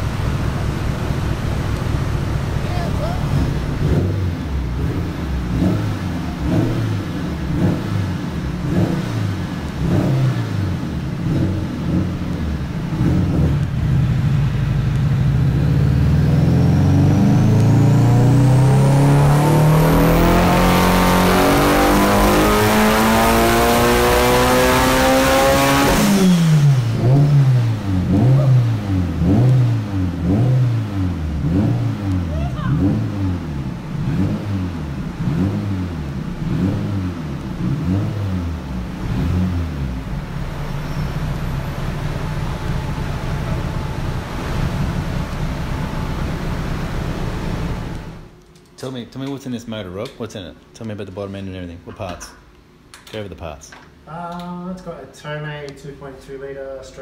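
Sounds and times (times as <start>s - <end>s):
car engine revving on dyno: 0.0s - 48.3s
engine throttle blips: 0.0s - 48.4s
high turbo whistle: 40.5s - 46.9s.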